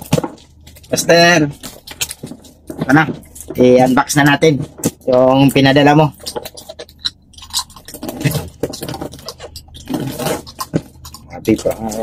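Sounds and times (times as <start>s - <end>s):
blade cutting packing tape: 9.8s - 10.9s.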